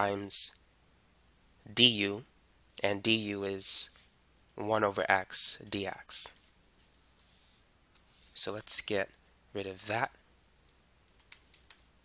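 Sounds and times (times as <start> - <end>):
computer mouse clicks: 10.6 - 11.9.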